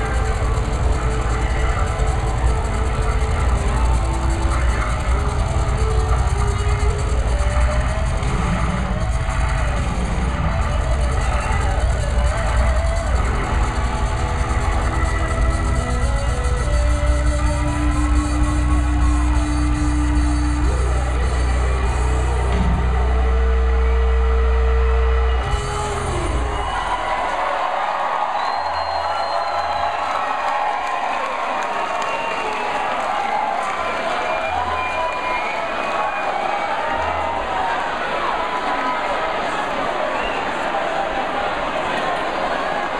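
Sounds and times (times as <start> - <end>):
live rock band playing: 0.0 - 27.2
heavy bass: 0.0 - 27.4
crowd cheering and shouting: 0.0 - 42.9.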